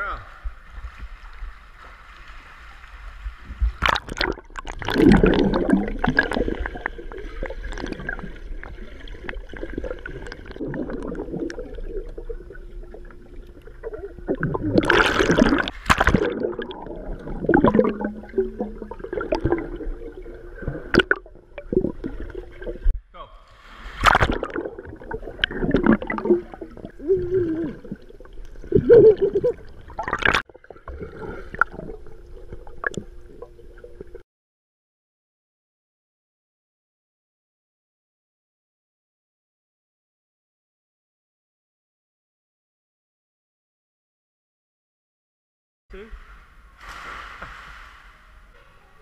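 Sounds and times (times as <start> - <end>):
underwater gurgling and bubbling: 3.4 - 23.0, 24.0 - 34.2
swimmers splashing: 46.0 - 49.0.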